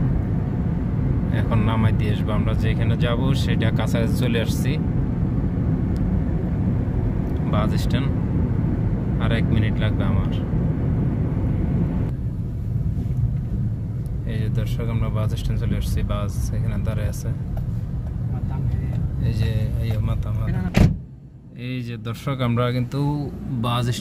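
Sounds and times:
car engine and tyres rumbling: 0.0s - 24.0s.

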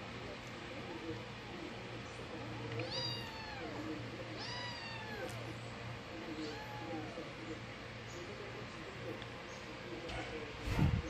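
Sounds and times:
cat meowing: 2.8s - 5.5s, 6.3s - 7.3s.

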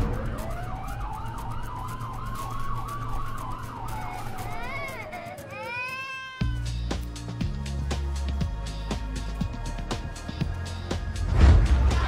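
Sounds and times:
siren wailing: 0.0s - 5.7s
music with deep bass beat: 6.4s - 12.0s.

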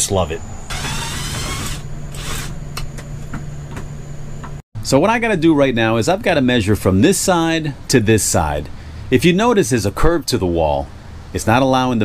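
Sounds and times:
steady low hum: 0.0s - 11.7s.

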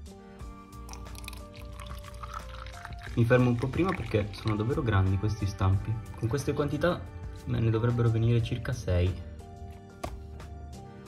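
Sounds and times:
background music with held notes: 0.0s - 11.0s
liquid pouring into mould: 0.7s - 5.3s.

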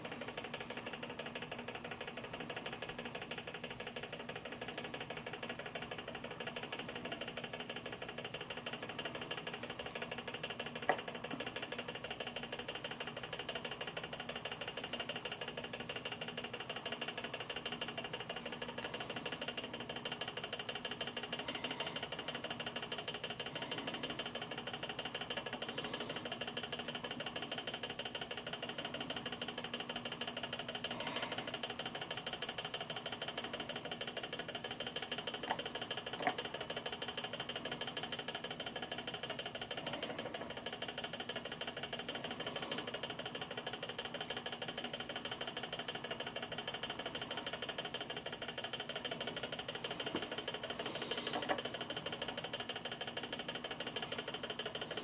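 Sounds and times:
stirrer motor humming: 0.0s - 13.2s, 35.3s - 37.0s
brush clicking on glass beaker: 10.8s - 11.6s, 18.8s - 19.1s, 25.5s - 26.0s, 35.4s - 36.5s, 51.1s - 51.7s.

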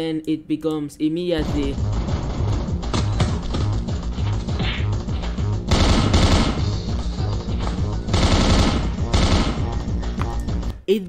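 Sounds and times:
driving soundtrack music: 1.4s - 11.0s.

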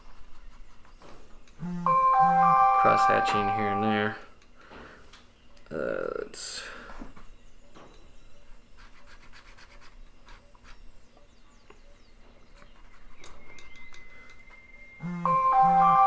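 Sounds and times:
alarm playing a tune: 1.6s - 4.3s, 15.0s - 16.0s
pen scratching on paper: 8.8s - 10.8s, 12.6s - 13.2s.

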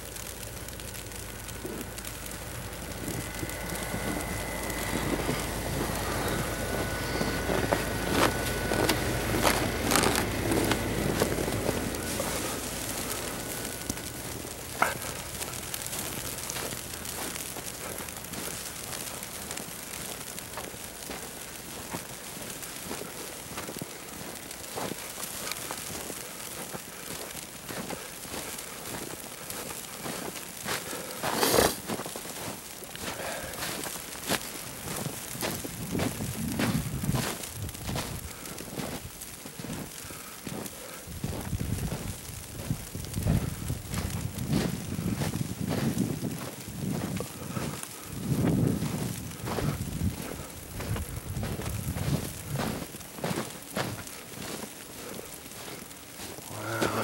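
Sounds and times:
fine steady crackle: 0.0s - 57.0s
footsteps crunching through snow: 0.0s - 57.0s.

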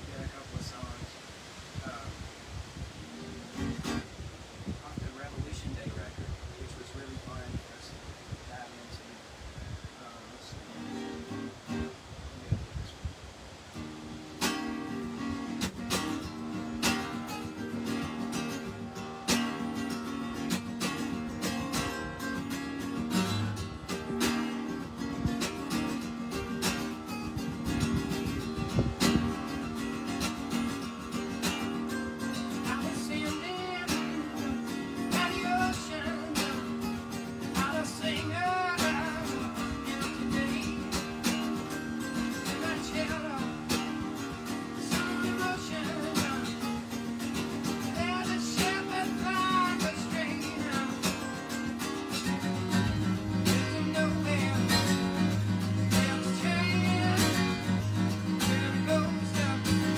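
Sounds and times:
acoustic guitar strumming: 3.0s - 4.2s, 10.7s - 12.0s, 13.7s - 59.9s.

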